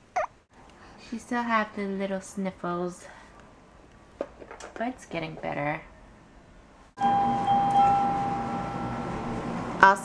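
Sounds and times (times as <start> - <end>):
low hum: 7.0 - 10.0.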